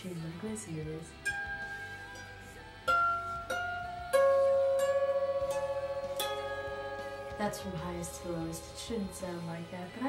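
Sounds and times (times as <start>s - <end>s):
out of tune harp plucked: 1.0s - 10.0s.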